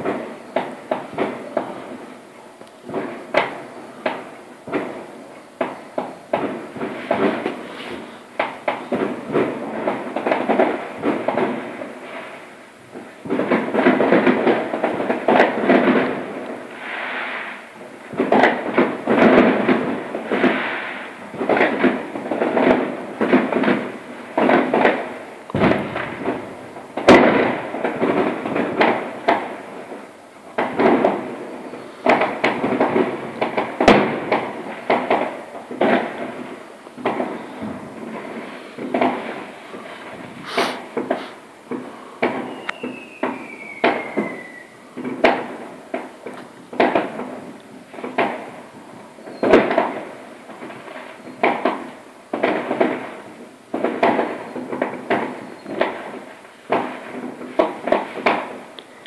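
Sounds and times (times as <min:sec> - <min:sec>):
fireworks bangs and crackling: 0:00.0 - 0:59.0
falling firework whistle: 0:02.9 - 0:47.2, 0:48.0 - 0:53.1, 0:53.8 - 0:59.0.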